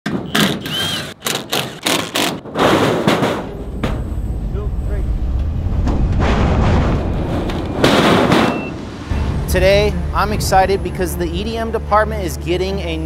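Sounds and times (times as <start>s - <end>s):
cordless driver bursts: 0.3s - 2.3s
forklift engine rumbling: 3.4s - 11.9s.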